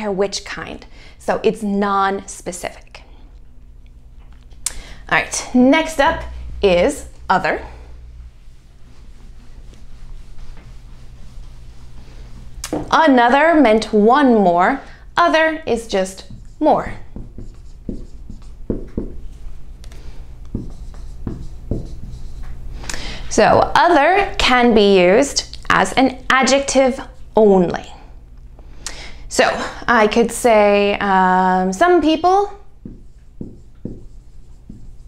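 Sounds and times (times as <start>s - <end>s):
marker writing on whiteboard: 15.3s - 19.4s, 20.4s - 22.6s, 32.8s - 35.0s.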